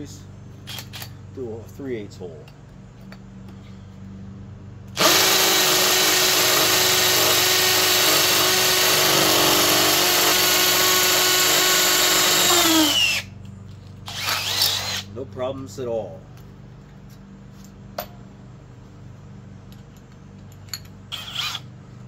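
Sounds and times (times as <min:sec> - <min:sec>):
hammer drill boring into concrete: 0:05.0 - 0:13.3, 0:14.1 - 0:15.1, 0:21.1 - 0:21.6.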